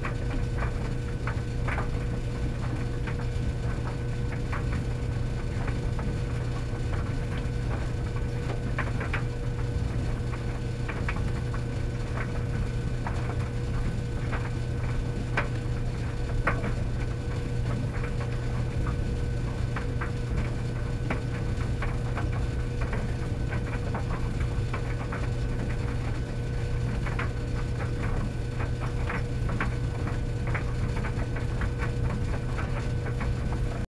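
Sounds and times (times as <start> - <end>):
tumble dryer motor hum: 0.0 - 33.9.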